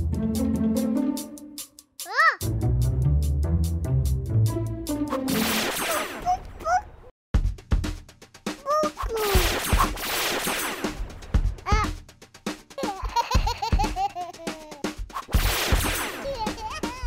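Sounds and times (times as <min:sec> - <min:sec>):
children's music with drum beat: 0:00.0 - 0:06.4, 0:07.3 - 0:17.0
baby giggling: 0:12.8 - 0:14.9, 0:16.2 - 0:17.0.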